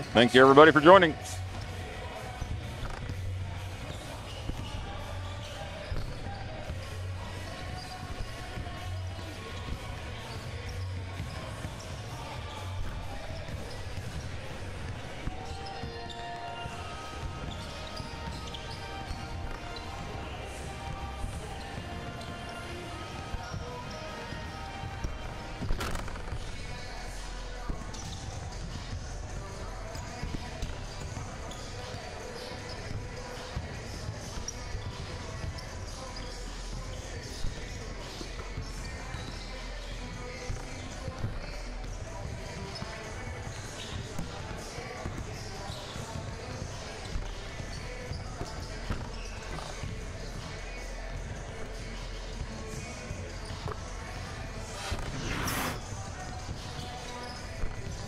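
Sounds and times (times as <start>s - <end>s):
faint background music: 0.0s - 58.0s
murmur of crowd voices: 0.0s - 58.0s.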